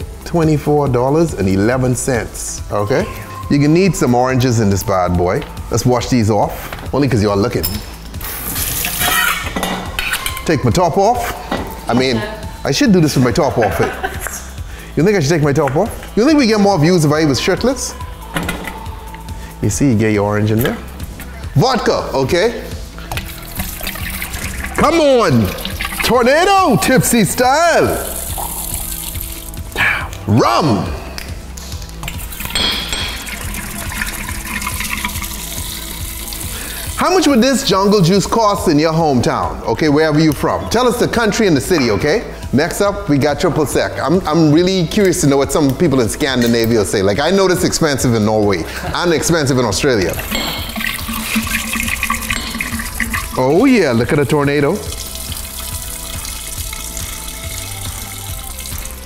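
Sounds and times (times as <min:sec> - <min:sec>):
faint background music: 0:00.0 - 0:59.0
liquid pouring into glass: 0:23.0 - 0:27.0, 0:27.9 - 0:29.7, 0:32.0 - 0:37.0, 0:50.1 - 0:54.1, 0:54.8 - 0:59.0.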